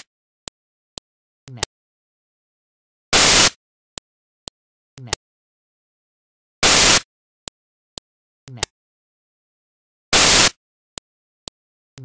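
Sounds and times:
burst of hissing static: 3.2 - 3.6, 6.6 - 7.0, 10.1 - 10.6
short clicks: 10.1 - 10.6.

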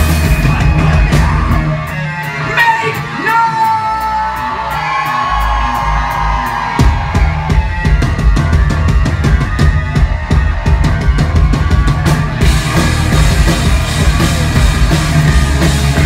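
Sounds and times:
pop-punk band playing: 0.0 - 16.0.

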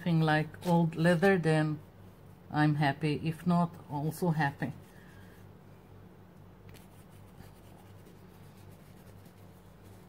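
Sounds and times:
low steady hum: 0.0 - 10.0
paintbrush scratching on paper: 0.1 - 3.0, 4.2 - 5.5, 6.7 - 10.0.

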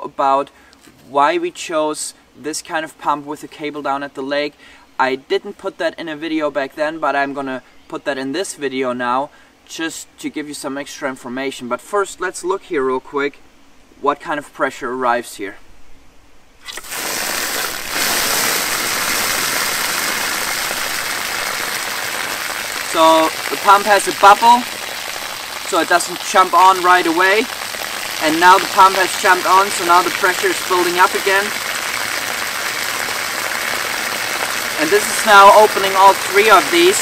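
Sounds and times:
water rushing from taps: 16.6 - 37.0
water splashing on ground: 16.6 - 37.0.

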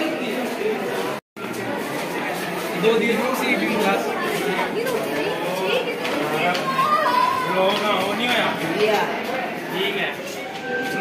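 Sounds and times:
young men chattering: 0.0 - 11.0.

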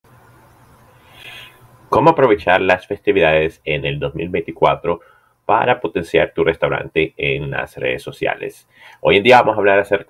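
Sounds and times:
faint room hum: 0.1 - 10.0
breathy vocal sound: 1.0 - 1.7
man speaking: 1.3 - 10.0.

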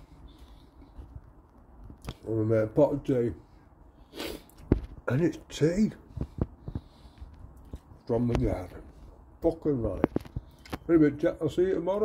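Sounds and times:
man chewing food: 6.2 - 8.0.

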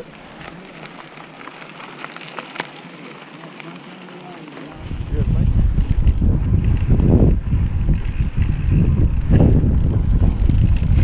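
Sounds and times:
bike clicks and rattles: 0.0 - 11.0
bike tyres rolling on dirt: 0.0 - 11.0.

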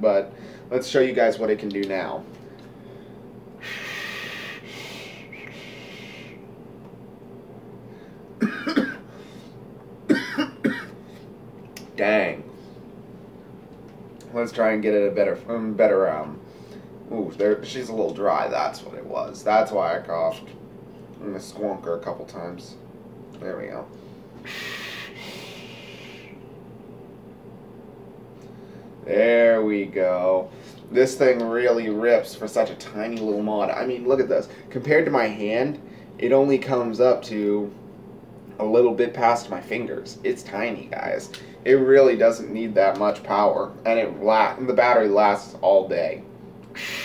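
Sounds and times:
air hissing through vape: 3.6 - 6.4, 24.4 - 26.4, 46.7 - 47.0
man coughing: 8.4 - 9.1, 10.1 - 11.0.

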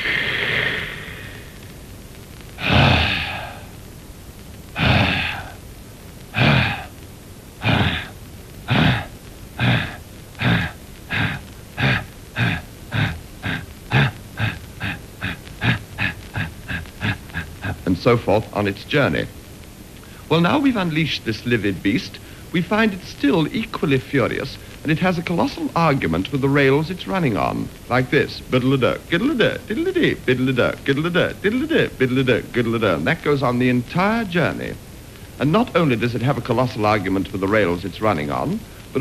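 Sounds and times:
man imitating steam locomotive: 0.0 - 1.7, 2.6 - 3.7, 4.8 - 5.6, 6.3 - 6.9, 7.6 - 18.7.

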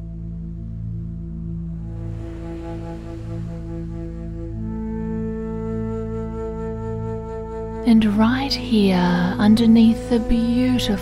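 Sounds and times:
calm slow background music: 0.0 - 11.0.

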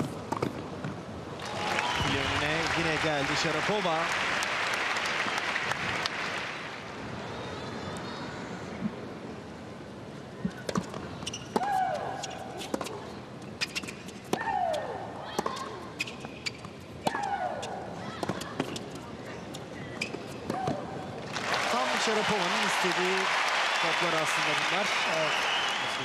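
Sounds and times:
crowd applauding: 1.4 - 6.8, 21.3 - 26.0.

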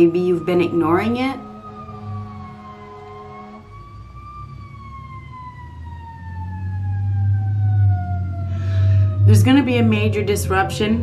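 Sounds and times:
emergency vehicle siren wailing: 0.0 - 11.0
low rumble: 0.0 - 11.0.

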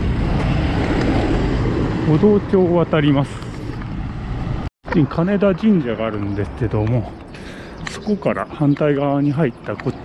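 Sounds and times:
busy road traffic passing: 0.0 - 10.0.

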